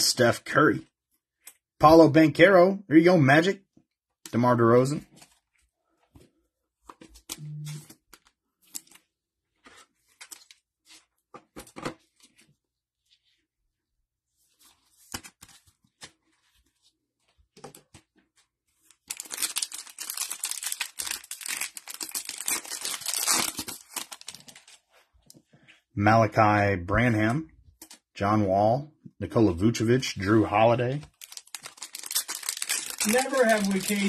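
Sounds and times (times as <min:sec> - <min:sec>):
cards clicking and rustling: 0:18.8 - 0:24.8, 0:31.0 - 0:34.0
foil pack tearing: 0:19.1 - 0:24.5, 0:31.2 - 0:34.0.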